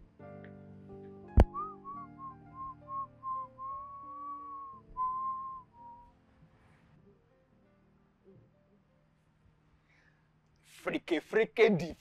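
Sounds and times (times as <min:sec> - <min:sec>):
soft background music: 0:00.0 - 0:09.9
person whistling a tune: 0:01.4 - 0:06.1.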